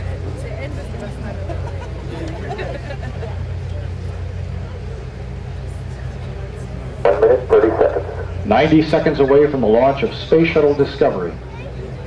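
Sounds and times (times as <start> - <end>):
faint crowd chatter: 0.0 - 12.0
steady low hum: 0.0 - 12.0.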